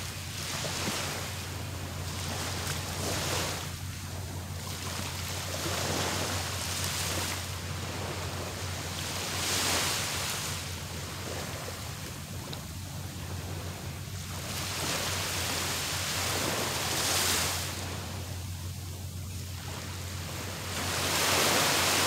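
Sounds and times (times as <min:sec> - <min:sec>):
small waves breaking on sand: 0:00.0 - 0:22.0.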